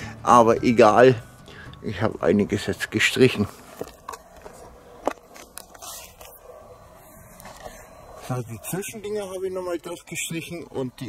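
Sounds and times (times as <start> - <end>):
light scraping: 3.3 - 8.4.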